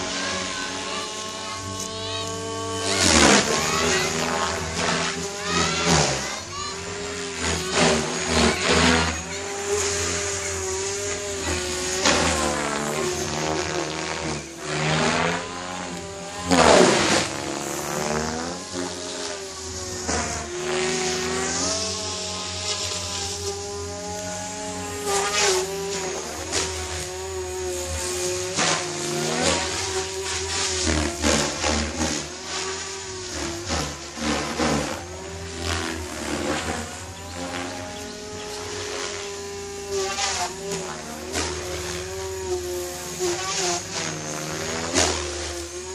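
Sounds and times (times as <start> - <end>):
rc helicopter motor whine: 0.0 - 45.9.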